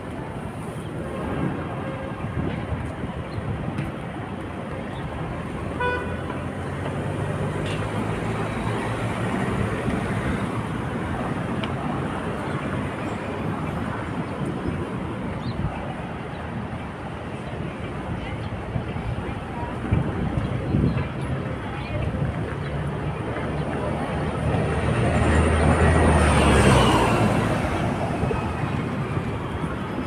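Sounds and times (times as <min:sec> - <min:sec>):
heavy vehicle rumble: 0:00.0 - 0:30.0
passing cars: 0:00.0 - 0:30.0
car horn toot: 0:05.8 - 0:06.2.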